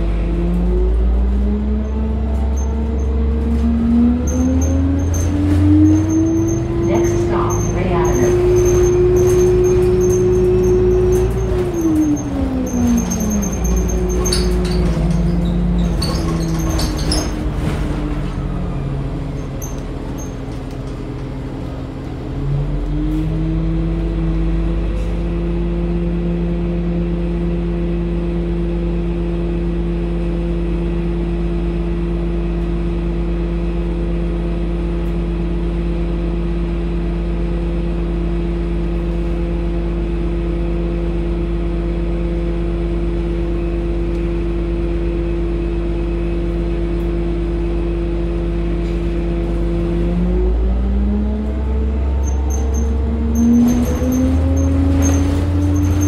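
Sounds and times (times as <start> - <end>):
bus engine drone: 0.0 - 56.0.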